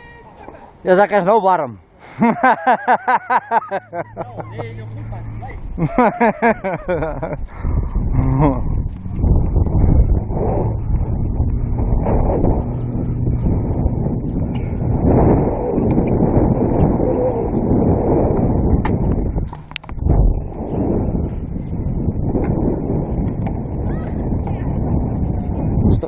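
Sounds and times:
wind buffeting microphone: 0:02.4 - 0:26.0.

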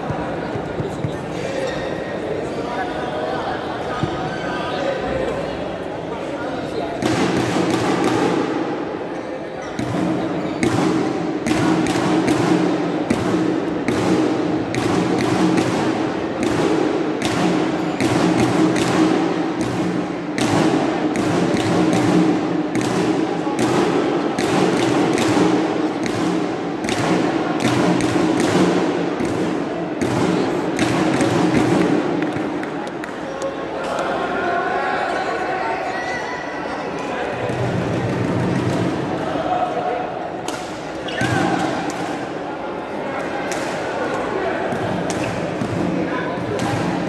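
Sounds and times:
indistinct chatter: 0:00.0 - 0:47.0
rackets hitting shuttlecocks: 0:06.9 - 0:08.6, 0:09.7 - 0:33.2, 0:40.4 - 0:42.4, 0:43.4 - 0:47.0.

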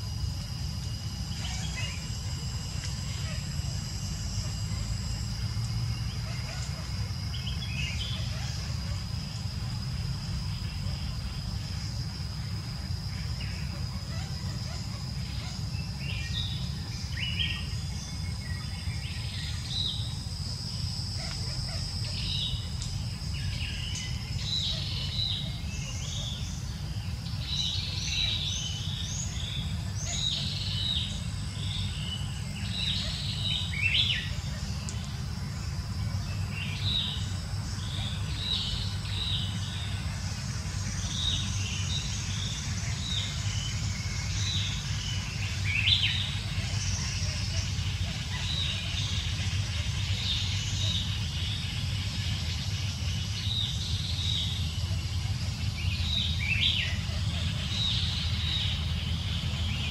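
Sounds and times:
birds chirping: 0:00.0 - 0:59.9
faint high whine: 0:00.0 - 0:59.9
steady low rumble: 0:00.0 - 0:59.9.

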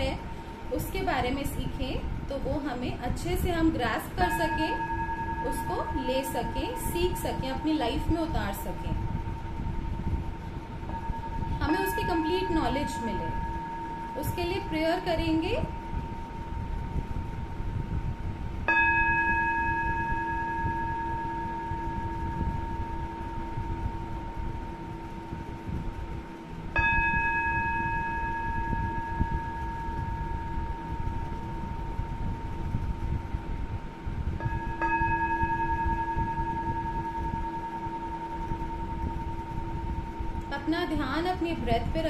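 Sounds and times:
singing bowl ringing: 0:00.8 - 0:42.0.

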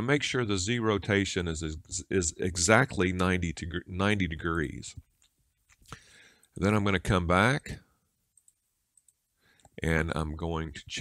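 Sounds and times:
computer mouse clicks: 0:08.4 - 0:09.8.

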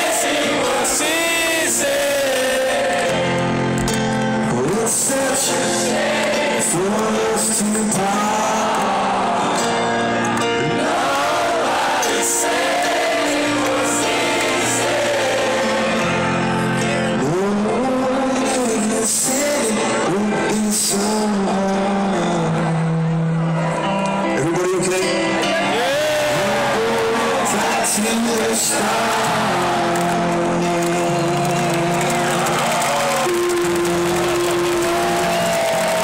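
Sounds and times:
wordless singing: 0:00.0 - 0:03.5, 0:04.5 - 0:09.6, 0:10.6 - 0:23.4, 0:24.4 - 0:35.3
crowd noise: 0:00.0 - 0:36.0
live rock band music: 0:00.0 - 0:36.0.

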